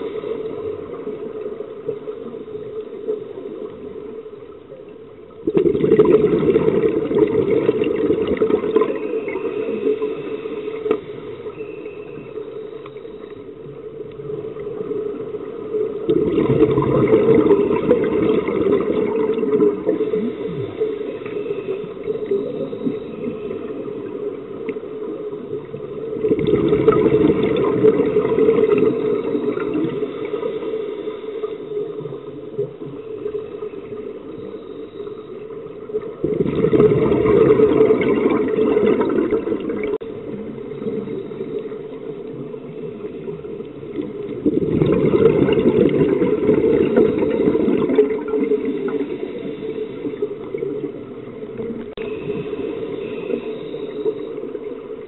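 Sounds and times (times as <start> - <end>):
low hiss: 0.0 - 5.6, 6.4 - 55.0
exhaled bubbles from regulator: 5.4 - 15.2, 15.9 - 24.8, 25.4 - 30.5, 35.9 - 54.8.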